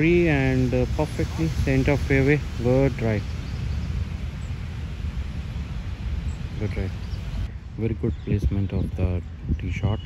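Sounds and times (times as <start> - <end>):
faint open-air hiss: 0.0 - 10.0
wind rumble on microphone: 0.0 - 10.0.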